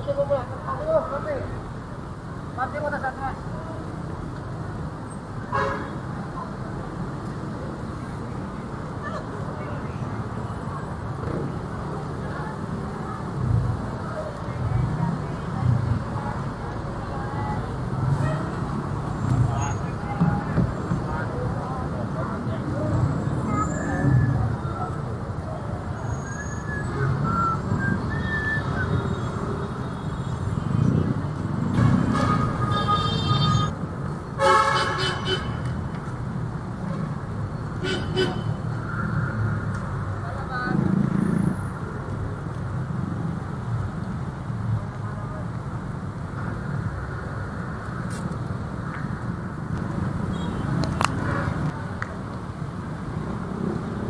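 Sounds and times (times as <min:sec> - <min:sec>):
city road traffic: 0:00.0 - 0:54.0
vehicle horns honking: 0:05.5 - 0:06.0, 0:31.8 - 0:33.8, 0:34.4 - 0:35.6, 0:37.8 - 0:38.6, 0:50.3 - 0:50.8.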